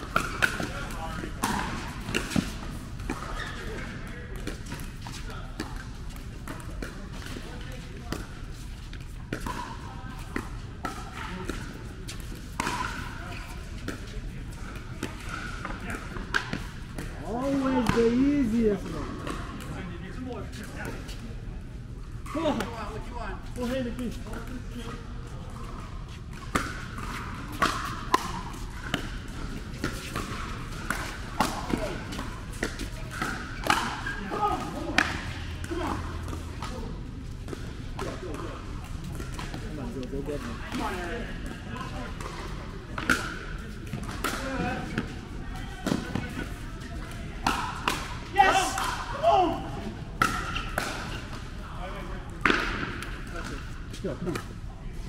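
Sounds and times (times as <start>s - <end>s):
people talking: 12.7s - 21.3s.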